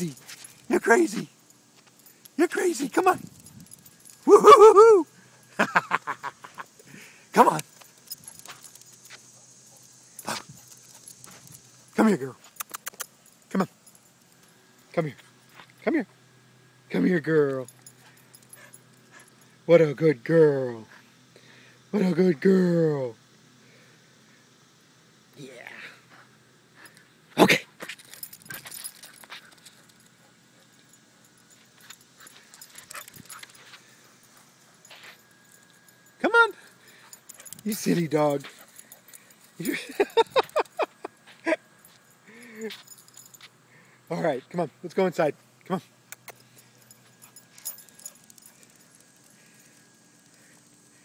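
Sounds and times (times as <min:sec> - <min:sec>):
faint ticks and rustles: 0:00.0 - 0:04.3, 0:05.1 - 0:15.8, 0:27.8 - 0:45.0, 0:45.6 - 0:51.0.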